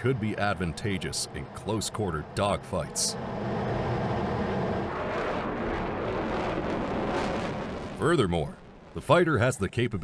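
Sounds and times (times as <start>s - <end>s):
jet engine roaring: 0.0s - 9.2s.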